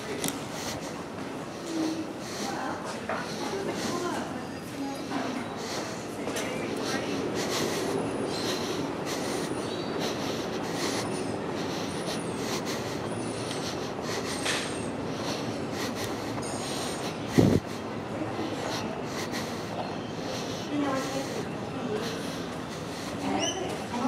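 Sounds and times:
steady rush of noise: 0.0 - 23.9
indistinct voices: 0.0 - 24.0.

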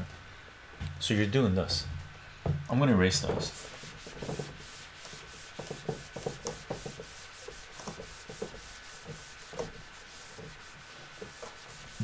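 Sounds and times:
eraser wiping a whiteboard: 3.4 - 12.0.

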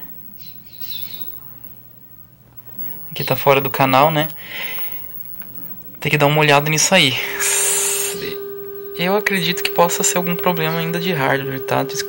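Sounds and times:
steady test tone: 0.0 - 12.0.

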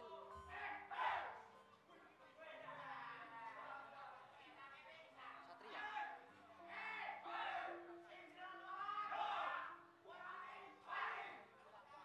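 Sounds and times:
background music: 0.0 - 1.8.

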